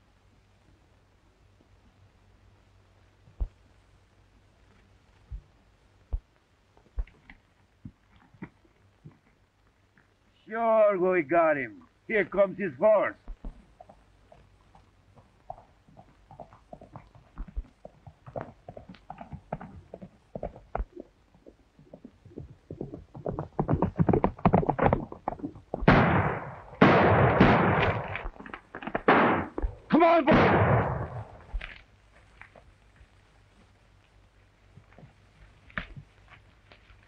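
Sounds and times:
galloping horse hoofbeats: 13.2 - 30.2, 31.0 - 37.0.

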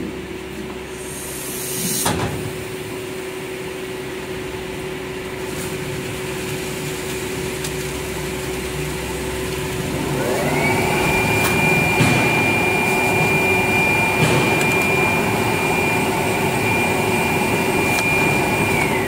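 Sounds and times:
machine humming: 0.0 - 19.0
motor whine rising in pitch: 8.2 - 19.0.

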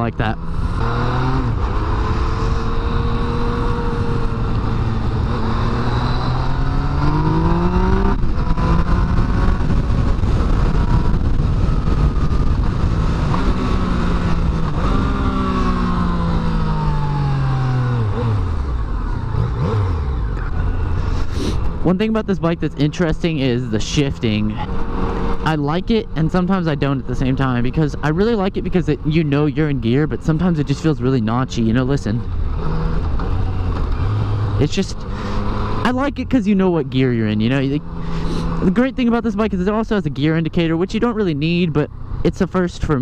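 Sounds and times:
motorcycle engine revving: 0.0 - 43.0.

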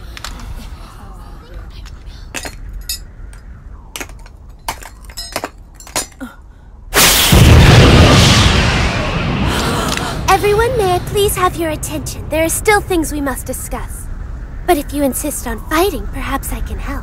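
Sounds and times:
rushing blast of wind: 6.7 - 14.7.

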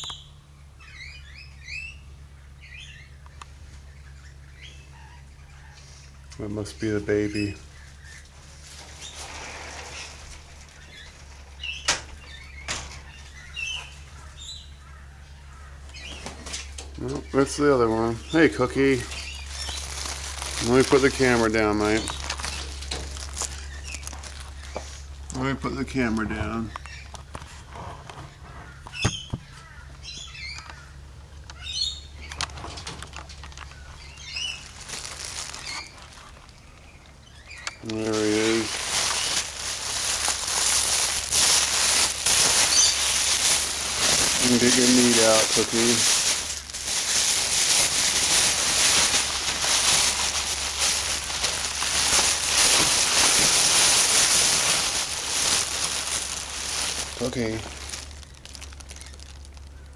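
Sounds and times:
high-pitched bird chirps: 0.0 - 3.2, 42.6 - 43.2
faint high bird chirps: 0.0 - 6.1
soft rustle: 7.9 - 11.6, 18.9 - 25.3, 34.4 - 37.0, 37.7 - 59.9.

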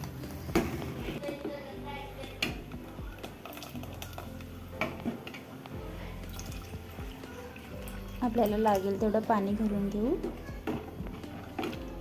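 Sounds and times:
background music: 0.0 - 12.0
ladle stirring thick paste: 2.3 - 12.0.

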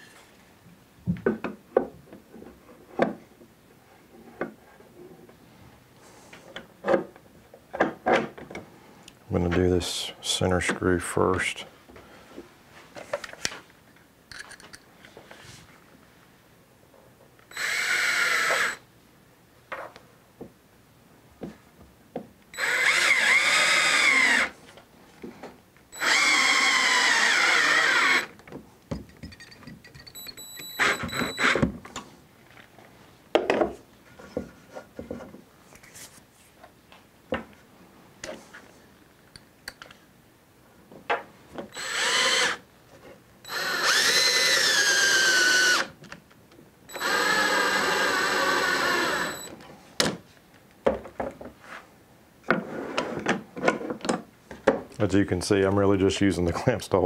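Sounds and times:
cordless drill driving screws: 17.5 - 18.8, 22.6 - 24.6, 26.0 - 28.3, 30.6 - 31.6, 41.7 - 42.6, 43.4 - 45.9, 46.9 - 49.5.

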